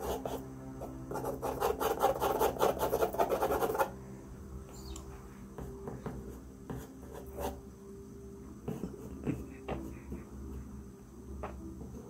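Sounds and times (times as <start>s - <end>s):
pencil scratching on paper: 0.0s - 3.9s
steady low hum: 0.0s - 12.0s.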